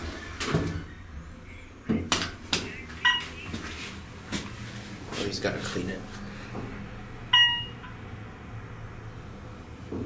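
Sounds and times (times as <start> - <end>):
short high ringing tone: 7.4 - 7.9.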